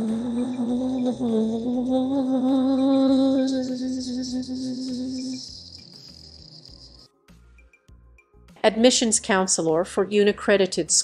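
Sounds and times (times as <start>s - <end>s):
held low musical note: 0.0s - 5.7s
high cricket-like trill: 0.0s - 7.1s.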